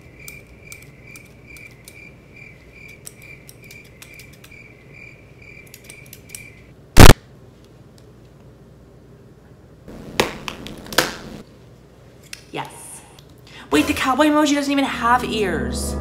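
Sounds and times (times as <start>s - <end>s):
crickets chirping: 0.0s - 6.7s
scissors snipping: 2.8s - 4.6s, 5.6s - 6.5s
loud short crack: 7.0s - 7.3s.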